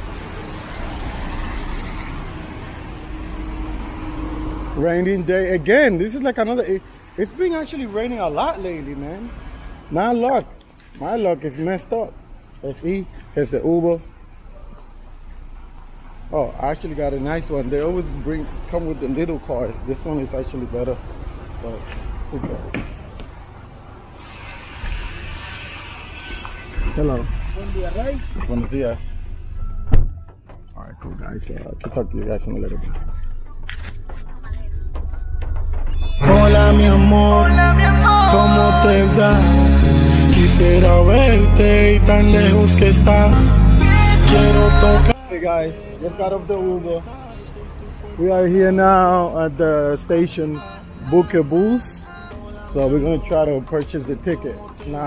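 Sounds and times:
traffic on wet road: 0.0s - 29.0s
street noise hiss: 0.0s - 29.6s, 45.2s - 55.0s
car door opening: 28.3s - 31.2s.

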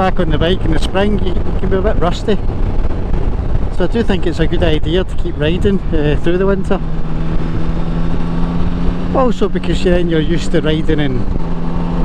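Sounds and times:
motorcycle engine cruising: 0.0s - 12.0s
road rumble: 0.0s - 12.0s
wind noise on microphone: 0.0s - 12.0s.

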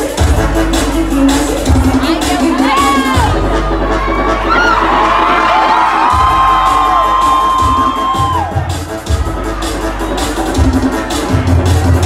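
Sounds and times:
crowd screaming and cheering: 0.0s - 12.0s
loud club music with bass: 0.0s - 12.0s.

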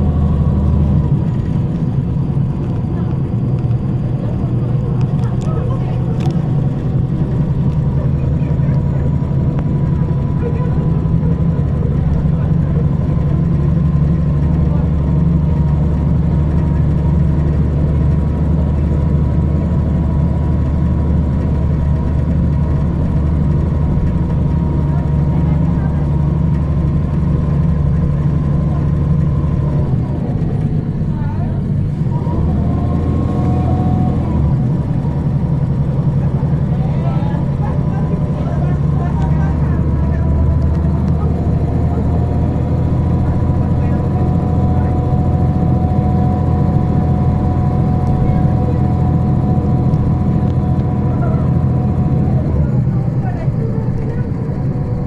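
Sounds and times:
bus engine droning: 0.0s - 55.0s.

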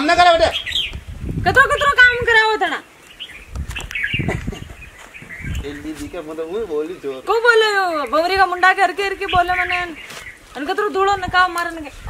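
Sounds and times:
birds chirping: 0.0s - 12.0s
low irregular rustling: 0.8s - 12.0s.

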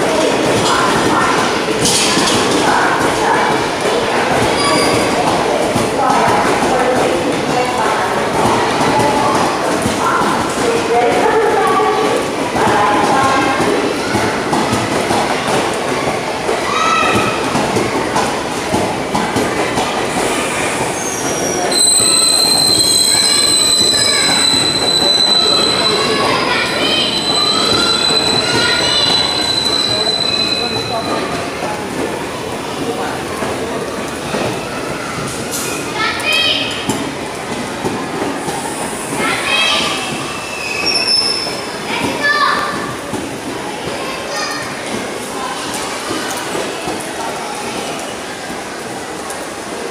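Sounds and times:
rumble of train wheels on rail: 0.0s - 49.9s
high wheel squeal: 20.3s - 31.3s, 40.3s - 41.8s.

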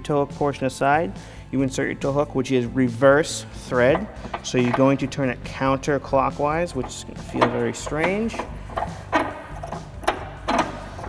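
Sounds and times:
tow hook clicks and scrapes: 3.5s - 5.3s, 6.0s - 11.0s.

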